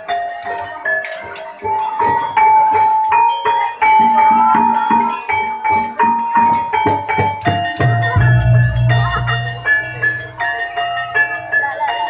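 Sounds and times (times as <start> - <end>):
drum beats: 5.6 - 11.4
struck metal keyed percussion: 5.6 - 11.7.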